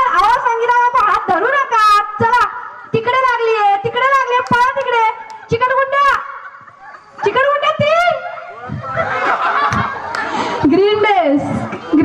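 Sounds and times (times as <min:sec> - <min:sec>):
people chattering: 0:00.0 - 0:12.0
group of people laughing: 0:05.4 - 0:12.0.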